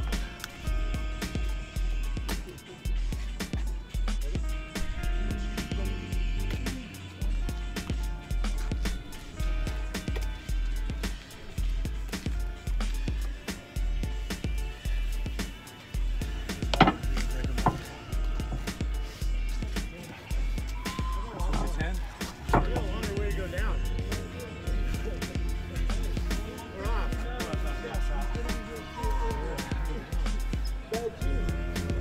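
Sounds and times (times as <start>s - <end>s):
background music with bass beat: 0.0s - 32.0s.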